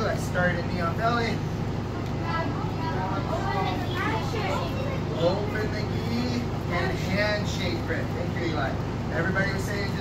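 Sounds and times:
steady low hum: 0.0 - 10.0.

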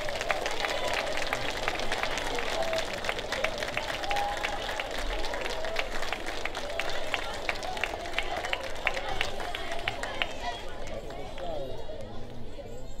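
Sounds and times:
audience clapping: 0.0 - 12.3
murmur of crowd chatter: 0.0 - 13.0.

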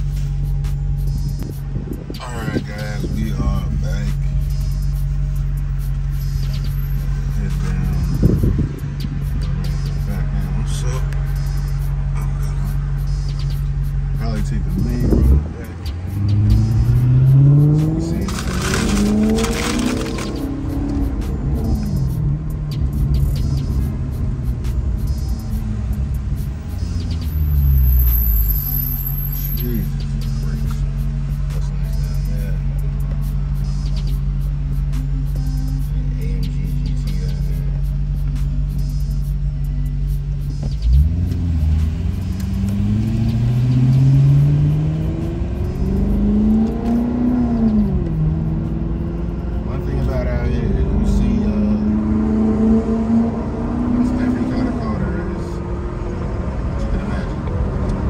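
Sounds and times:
car engine droning and revving: 0.0 - 58.0.

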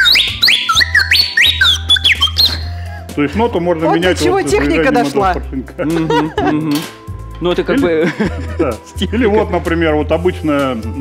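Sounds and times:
wooden whistle whooping: 0.0 - 2.8.

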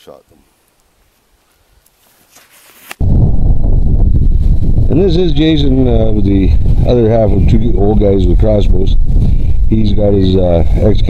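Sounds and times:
wind buffeting microphone: 3.0 - 11.0.

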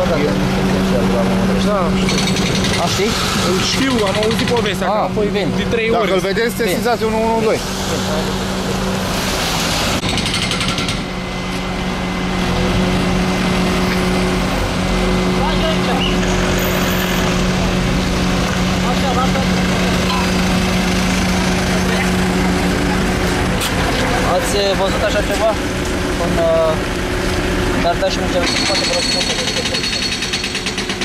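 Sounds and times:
vehicles passing on wet road: 0.0 - 10.0, 11.0 - 29.7
vehicle engine idling: 11.0 - 29.9.

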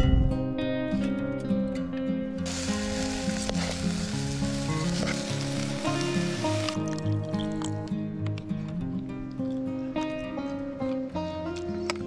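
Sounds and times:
plucked background music: 0.0 - 12.0
food sizzling in a pot: 2.4 - 6.9.

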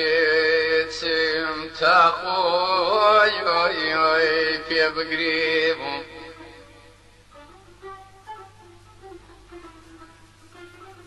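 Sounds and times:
man singing folk song: 0.0 - 7.0.

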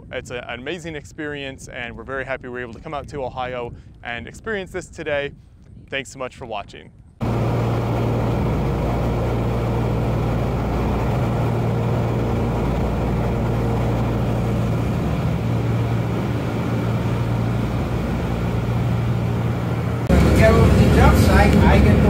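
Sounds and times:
cabin air rushing: 7.2 - 22.0
propeller plane engines droning: 7.2 - 22.0.

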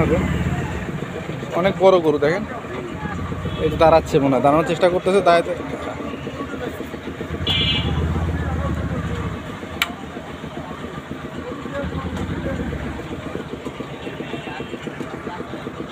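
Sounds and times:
engine idling: 0.0 - 15.9.

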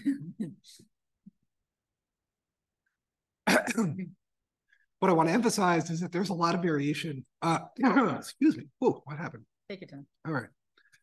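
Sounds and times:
man clearing throat: 3.5 - 4.0.

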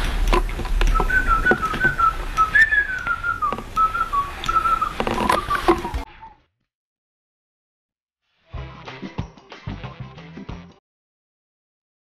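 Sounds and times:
person whistling a tune: 0.8 - 6.4.

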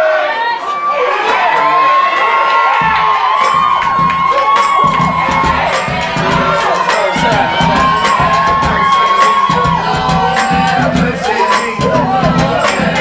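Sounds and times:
audience cheering and screaming: 0.0 - 13.0
music with low bass beat: 2.8 - 13.0.

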